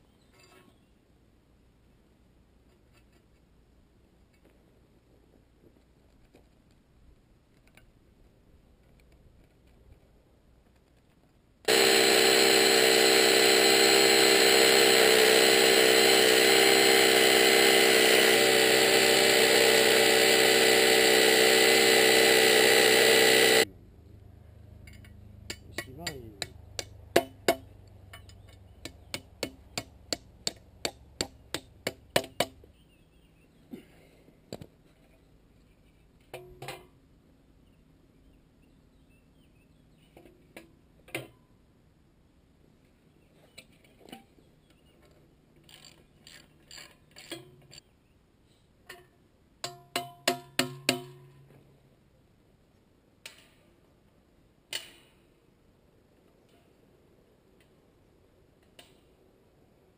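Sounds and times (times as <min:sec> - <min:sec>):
electric drill boring into concrete: 0:11.7 - 0:23.7.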